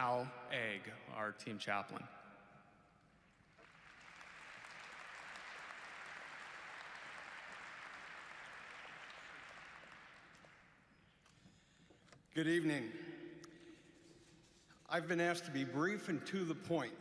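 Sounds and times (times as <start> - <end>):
audience applauding: 3.3 - 11.0.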